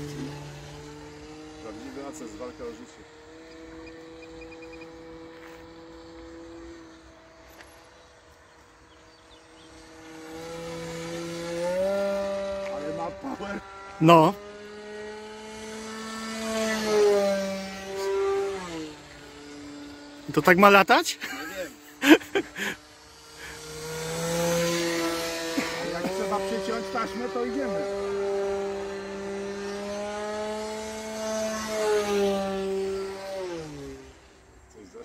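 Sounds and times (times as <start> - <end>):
model aircraft motor whine: 0.0 - 35.0.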